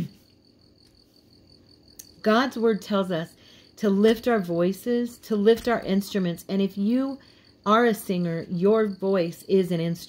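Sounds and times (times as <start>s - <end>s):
person speaking: 2.0s - 10.0s.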